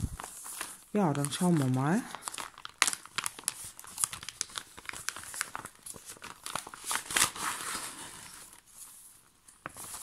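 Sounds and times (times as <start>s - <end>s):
plastic sleeve crinkling: 0.0s - 10.0s.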